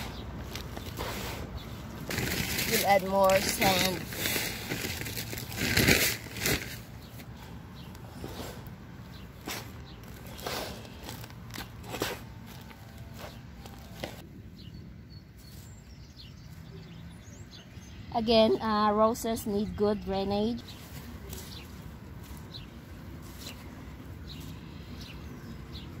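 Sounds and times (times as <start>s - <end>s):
hand scraping soil in tub: 0.0s - 7.4s.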